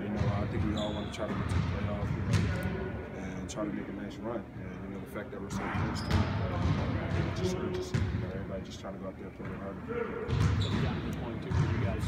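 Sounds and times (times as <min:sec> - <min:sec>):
basketball bouncing on court: 0:00.1 - 0:02.7, 0:05.7 - 0:08.2, 0:10.3 - 0:12.0.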